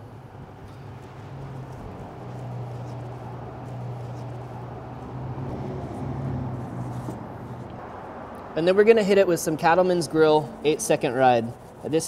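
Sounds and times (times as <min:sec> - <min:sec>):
steady low hum: 0:00.0 - 0:08.6
hand rubbing oil on fish: 0:01.0 - 0:07.6, 0:10.8 - 0:12.0.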